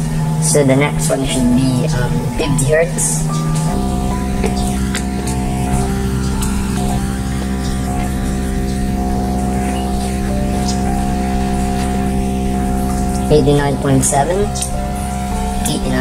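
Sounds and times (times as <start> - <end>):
low buzzy test tone hum: 0.0 - 16.0.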